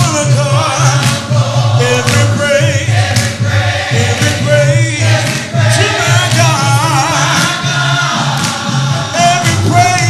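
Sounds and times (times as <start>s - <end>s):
man singing into microphone: 0.0s - 3.1s, 4.0s - 7.5s, 9.1s - 10.0s
backing music: 0.0s - 10.0s.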